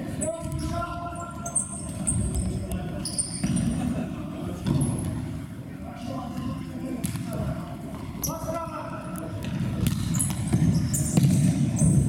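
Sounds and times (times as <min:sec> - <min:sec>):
shoes squeaking on court floor: 0:00.1 - 0:04.0, 0:04.6 - 0:05.3, 0:06.3 - 0:12.0.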